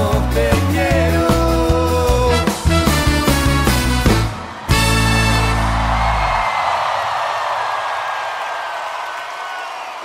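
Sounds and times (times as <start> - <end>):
audience crowd noise: 2.8 - 10.0.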